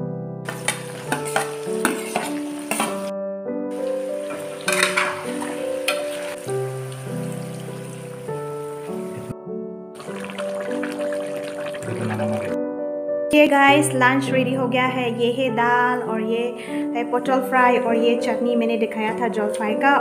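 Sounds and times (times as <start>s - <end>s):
background music: 0.0s - 20.0s
food sizzling in a wok: 0.5s - 3.1s, 3.7s - 9.3s, 10.0s - 12.6s
spatula scraping a pan: 0.5s - 3.1s, 3.9s - 6.5s.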